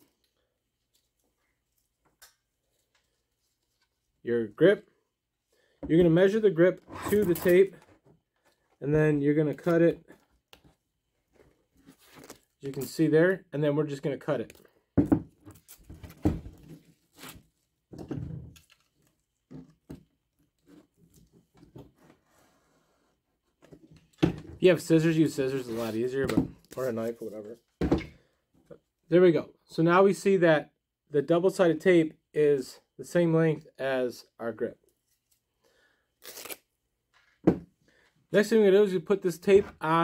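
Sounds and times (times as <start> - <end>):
tape handling: 11.8 - 13.0, 18.5 - 19.8, 36.2 - 36.7
utility knife cutting tape: 36.2 - 36.7.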